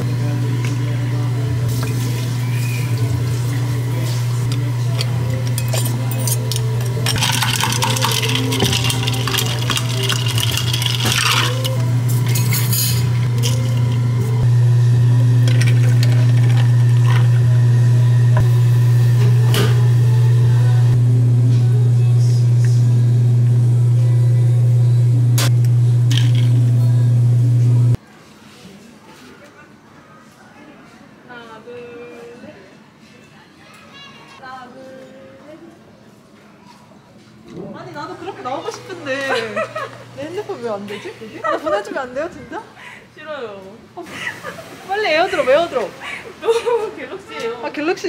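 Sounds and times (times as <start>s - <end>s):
loud low hum: 0.0s - 28.0s
glassware and utensils clinking: 4.4s - 14.1s
coffee pouring over ice: 5.5s - 14.0s, 15.4s - 17.4s, 26.1s - 26.6s.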